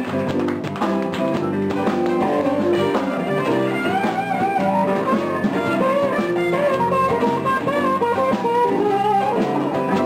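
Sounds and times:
blues band playing: 0.0s - 10.0s
electric guitars: 0.0s - 10.0s.

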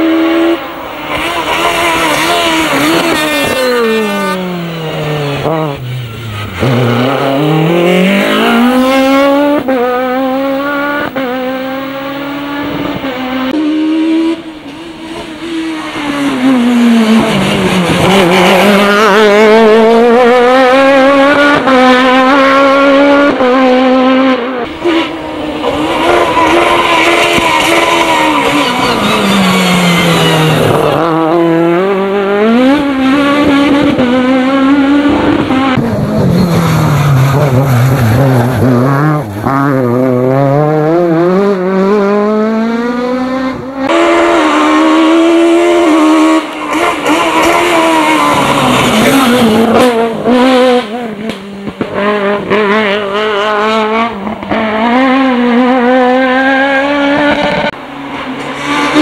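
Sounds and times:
car engine revving hard: 0.0s - 59.0s.

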